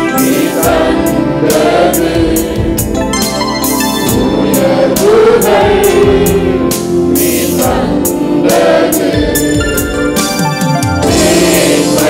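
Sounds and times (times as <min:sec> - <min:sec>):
band accompaniment with cymbal beat: 0:00.0 - 0:12.0
congregation singing: 0:00.0 - 0:12.0.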